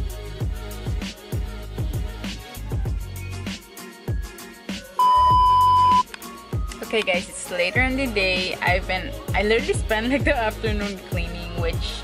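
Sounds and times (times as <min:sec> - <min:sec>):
background music with a beat: 0:00.0 - 0:12.0
test-tone beep: 0:05.0 - 0:06.1.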